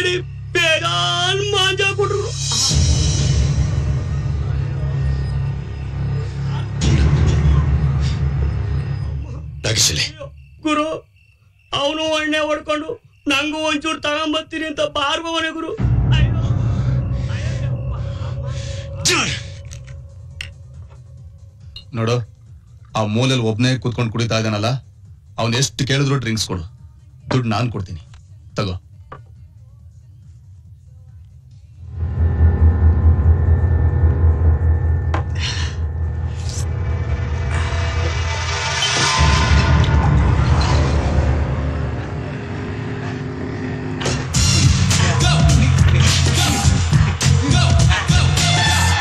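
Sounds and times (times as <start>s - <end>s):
low steady drone: 15.8s - 21.8s, 31.7s - 45.0s.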